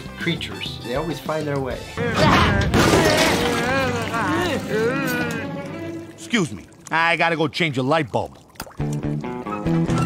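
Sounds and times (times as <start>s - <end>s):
cartoon voices crying out: 2.0s - 5.7s
glass shattering: 2.3s - 4.2s.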